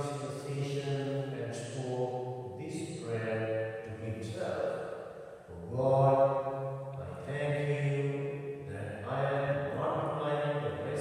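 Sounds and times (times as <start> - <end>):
man chanting: 0.0 - 4.8, 5.5 - 11.0.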